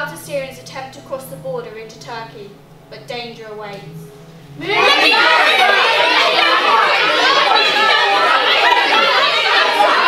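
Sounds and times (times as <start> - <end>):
crowd of teenagers talking: 4.6 - 10.0.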